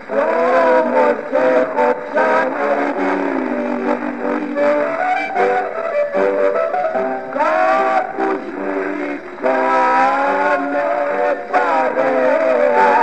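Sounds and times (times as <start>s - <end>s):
man singing ornamented phrases: 0.0s - 5.5s, 6.2s - 13.0s
instrumental accompaniment: 0.0s - 13.0s.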